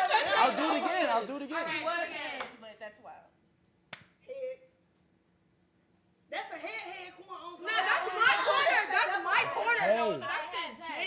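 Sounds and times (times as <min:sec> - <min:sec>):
people talking: 0:00.0 - 0:03.2, 0:06.3 - 0:11.0.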